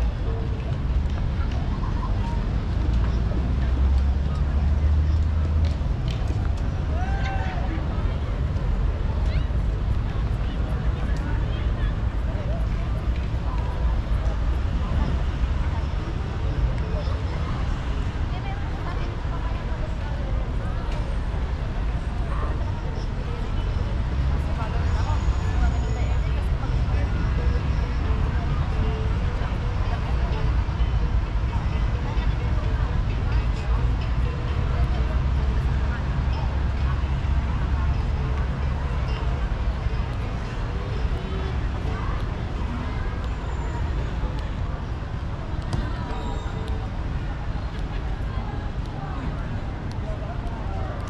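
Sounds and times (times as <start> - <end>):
indistinct crowd voices: 0.0 - 51.0.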